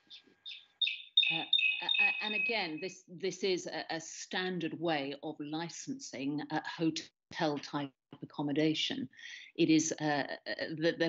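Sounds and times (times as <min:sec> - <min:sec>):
bird chirping: 0:00.0 - 0:02.9.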